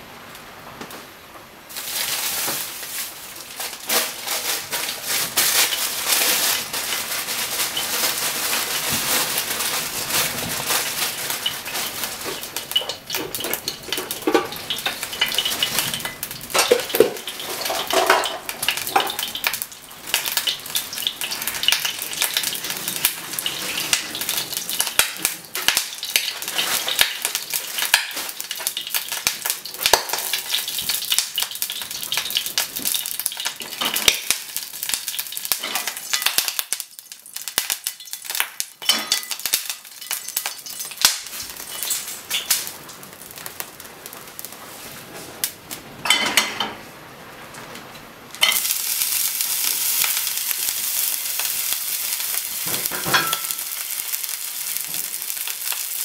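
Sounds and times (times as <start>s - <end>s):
frying pan sizzling and popping: 0.0s - 56.0s.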